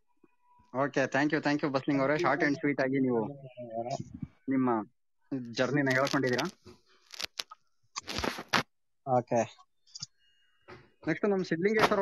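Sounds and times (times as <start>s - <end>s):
person talking: 0.8s - 6.6s.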